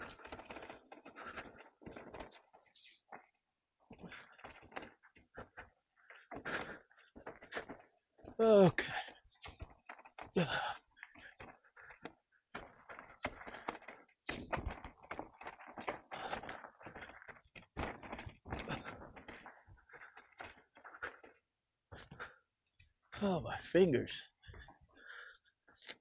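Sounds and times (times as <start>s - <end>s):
bike rattling on rough trail: 0.0s - 3.2s, 3.9s - 21.4s.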